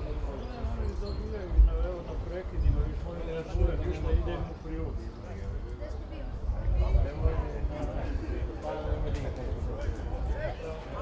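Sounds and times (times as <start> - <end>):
players calling and talking: 0.0 - 11.0.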